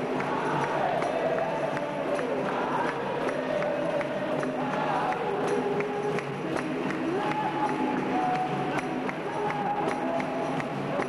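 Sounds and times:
people clapping in a steady beat: 0.0s - 11.0s
voices singing held melody: 0.0s - 11.0s.

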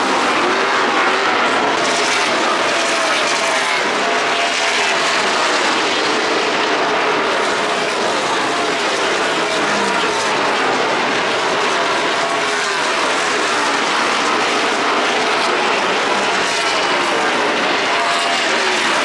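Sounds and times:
race car engines droning: 0.0s - 19.0s.

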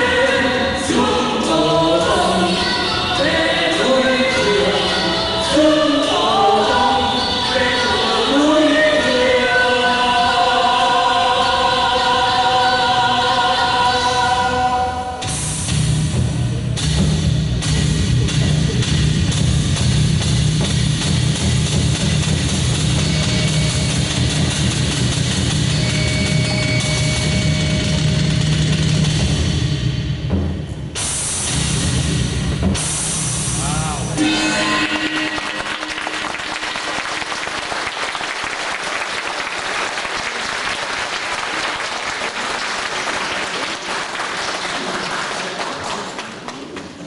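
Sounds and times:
stage show music with drum beat: 15.2s - 37.8s
audience applauding: 34.8s - 47.0s.

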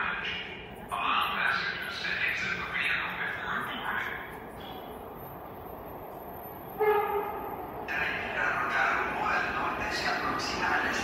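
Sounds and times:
train approaching: 0.0s - 11.0s
train horn blast: 6.8s - 7.5s.

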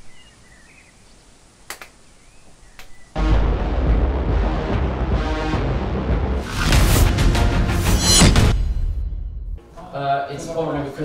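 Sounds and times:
faint bird chirps: 0.0s - 3.2s.

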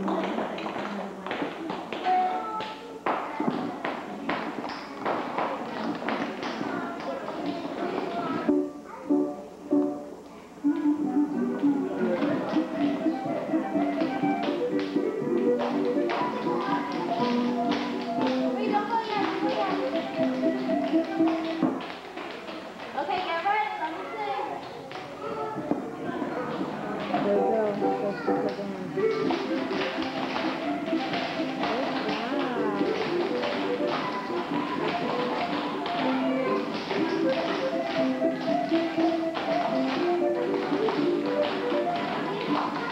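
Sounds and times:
recorded music: 8.3s - 22.0s, 26.5s - 42.9s
dance shoes tapping on wooden floor: 11.6s - 23.3s, 26.6s - 42.9s.

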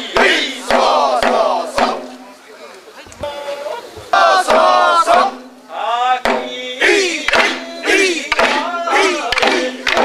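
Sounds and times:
men chanting: 0.0s - 2.2s, 3.2s - 10.0s
sharp knock: 0.2s - 2.2s, 6.2s - 6.6s, 7.3s - 7.6s, 8.3s - 8.6s, 9.3s - 10.0s.

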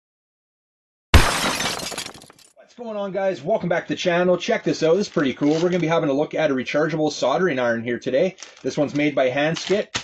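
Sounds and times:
glass shattering: 1.2s - 2.5s.

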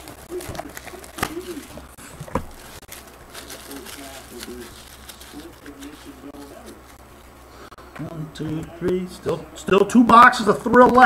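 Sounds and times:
plastic wrapping crackling: 0.0s - 7.2s.

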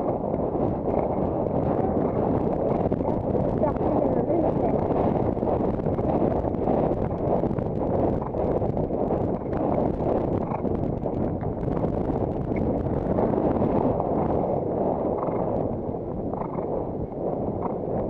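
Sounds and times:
wind on microphone: 0.0s - 18.0s.

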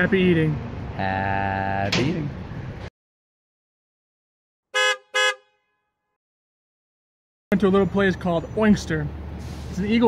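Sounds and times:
vehicle horn honks: 4.7s - 6.1s.

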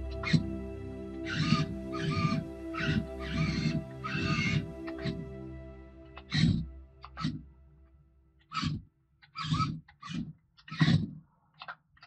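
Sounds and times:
background music sustained tones: 0.0s - 9.2s.

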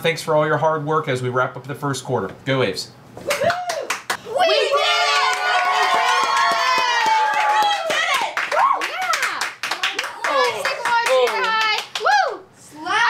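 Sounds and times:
girls cheering: 3.2s - 13.0s
hand clapping: 3.3s - 4.2s, 5.3s - 12.2s
girls shouting excitedly: 3.4s - 9.4s, 10.0s - 13.0s.

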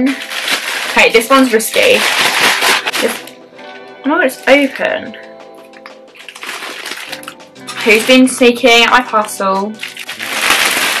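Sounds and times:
plastic bag rustling and tearing: 0.0s - 3.4s, 6.2s - 11.0s
quiet background music: 0.0s - 11.0s.

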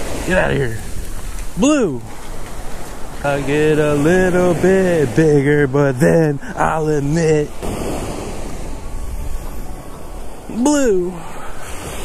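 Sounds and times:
surf washing: 0.0s - 12.0s
wind rumbling on microphone: 0.0s - 12.0s.

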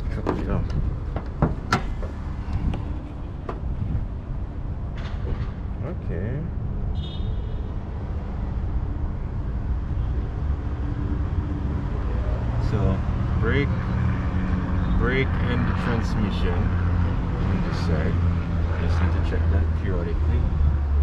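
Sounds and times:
bonnet latch clicks and clunks: 0.0s - 2.8s, 3.4s - 3.7s
steady low rumble: 0.0s - 6.9s.

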